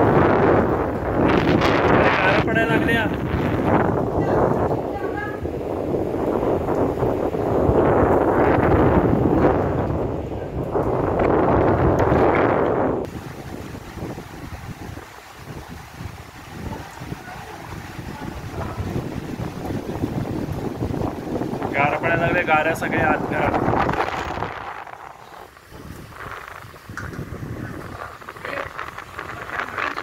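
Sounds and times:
heavy rain and hail: 0:00.0 - 0:30.0
storm wind buffeting microphone: 0:00.0 - 0:30.0.

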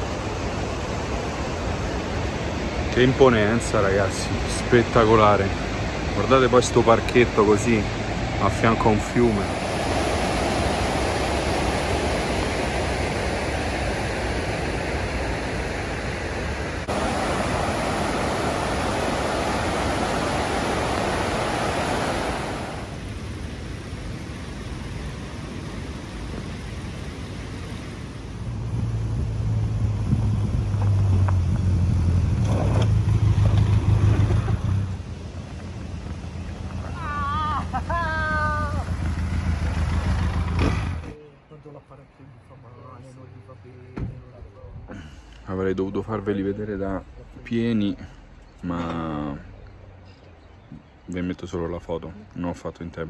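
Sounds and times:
river rushing over rocks: 0:00.0 - 0:28.4
motorcycle engine hum: 0:16.3 - 0:41.2.

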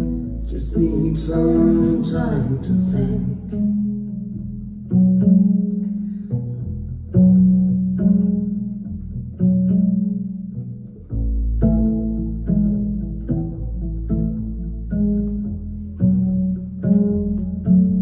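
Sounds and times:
double bass plucked notes: 0:00.0 - 0:18.0.

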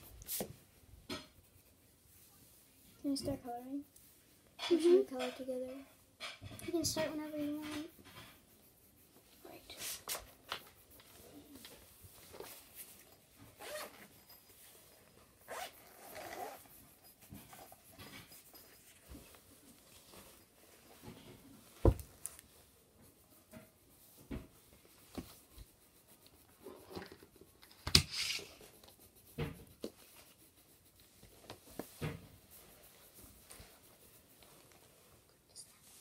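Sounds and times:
pencil scratching on paper: 0:00.0 - 0:36.0.

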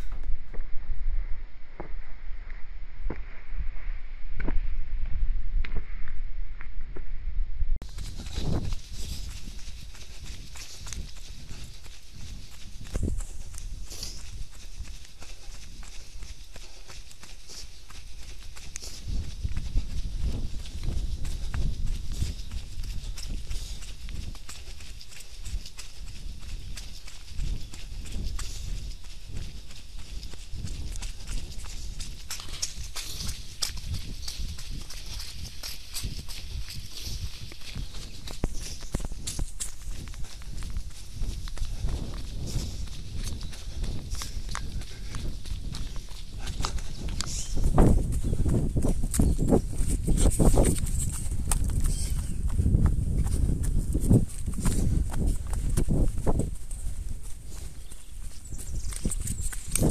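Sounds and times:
footsteps on muddy grass: 0:07.8 - 0:59.9.

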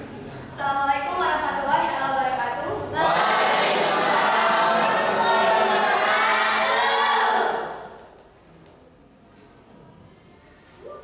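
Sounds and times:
many voices sounding together: 0:02.7 - 0:08.2.

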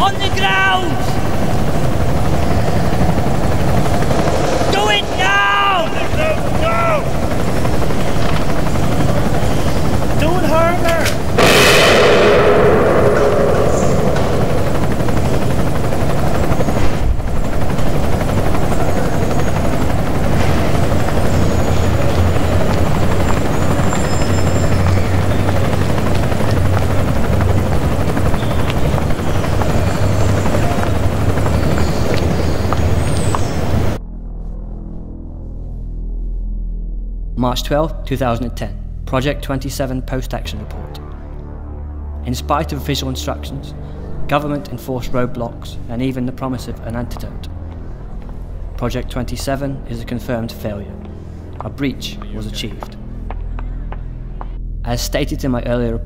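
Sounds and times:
helicopter rotor rumble: 0:00.0 - 0:36.2, 0:38.0 - 0:54.8
people shouting: 0:04.7 - 0:07.2
loud ringing bang: 0:11.4 - 0:16.9.

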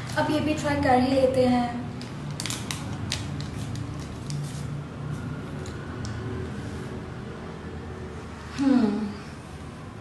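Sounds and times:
wrapper crinkling: 0:02.2 - 0:04.7.

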